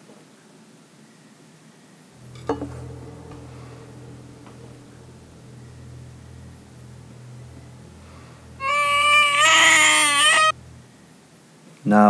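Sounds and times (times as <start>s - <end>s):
low steady hum: 2.2s - 11.2s
high-pitched wailing cry: 8.6s - 10.6s.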